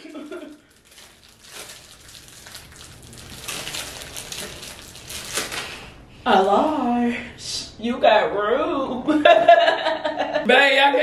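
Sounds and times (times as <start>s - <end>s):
plastic wrapper crinkling: 0.0s - 5.9s.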